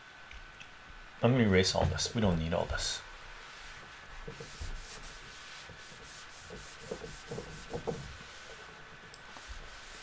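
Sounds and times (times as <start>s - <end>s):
eraser wiping whiteboard: 2.6s - 10.0s
eraser knocking against board: 6.8s - 8.1s.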